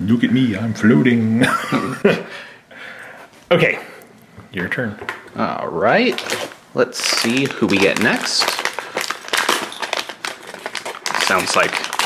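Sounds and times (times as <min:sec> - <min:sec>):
foil bag crinkling and tearing: 0:05.9 - 0:12.0.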